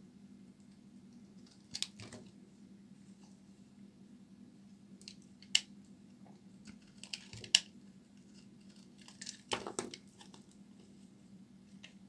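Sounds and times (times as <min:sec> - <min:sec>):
crackly scraping of soap: 0:06.6 - 0:11.0.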